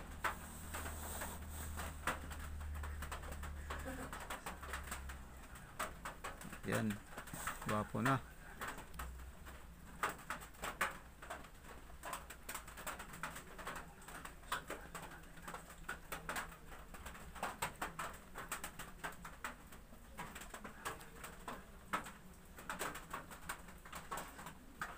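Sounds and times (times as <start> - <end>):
comb rustling through hair: 0.0 - 2.8.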